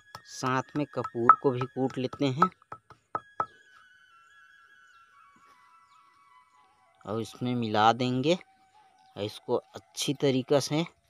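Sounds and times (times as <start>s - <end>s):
faint music with held tones: 0.0s - 11.0s
stone pounder knocking on stone slab: 0.8s - 3.5s.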